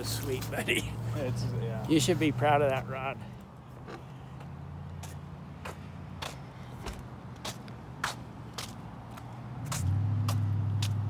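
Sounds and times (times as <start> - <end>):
vehicle engine hum: 0.0 - 11.0
footsteps on brick path: 3.4 - 11.0.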